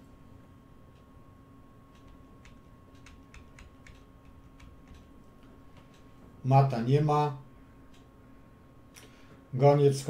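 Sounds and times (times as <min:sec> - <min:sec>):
low electrical hum: 0:00.0 - 0:10.0
computer mouse clicking: 0:01.9 - 0:06.2.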